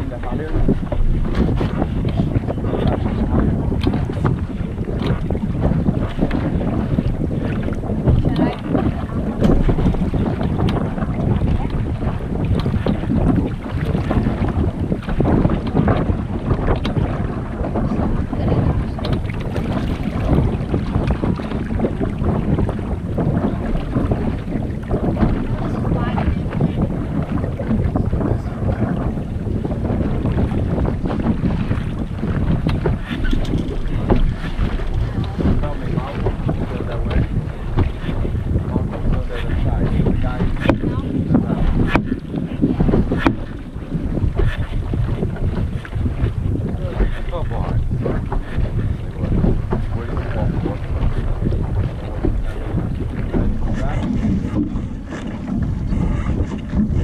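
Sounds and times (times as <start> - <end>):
water rushing along hull: 0.0 - 57.0
wind buffeting microphone: 0.0 - 57.0.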